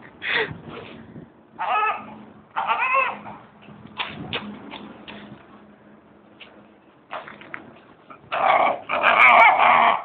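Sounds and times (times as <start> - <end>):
dog whining: 1.6 - 3.4.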